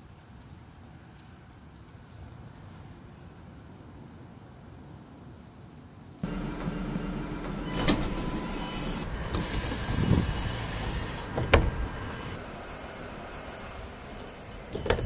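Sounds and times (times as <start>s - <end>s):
bus door clunk: 6.2s - 12.4s
bus door mechanism running: 6.2s - 12.4s
air hiss: 7.7s - 13.9s.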